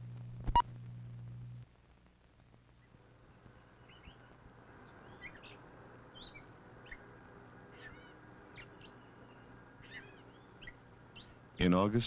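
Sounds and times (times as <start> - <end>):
film soundtrack hum and hiss: 0.0 - 12.0
birds chirping: 2.7 - 12.0.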